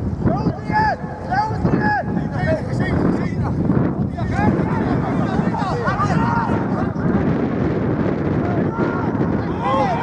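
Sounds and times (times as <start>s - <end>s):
wind rumble on microphone: 0.0s - 10.0s
people shouting calls: 0.2s - 2.7s, 4.1s - 7.2s, 8.3s - 10.0s.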